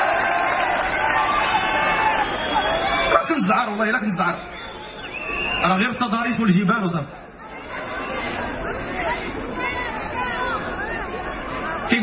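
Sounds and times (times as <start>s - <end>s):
audience chattering: 0.0s - 12.0s.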